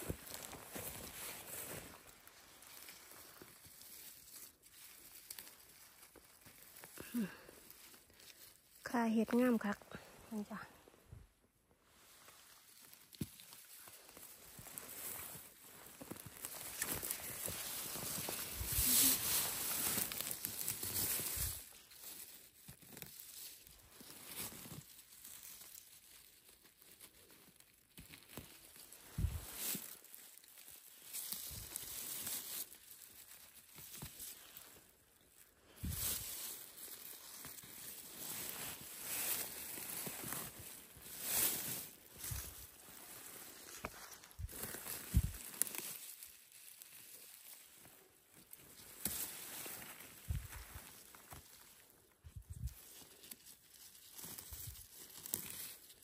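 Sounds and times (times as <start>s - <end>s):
grass and dry leaves rustling: 0.0s - 56.0s.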